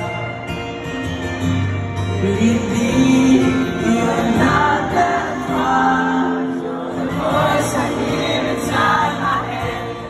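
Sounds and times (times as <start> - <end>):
crowd singing together: 2.2 - 10.0.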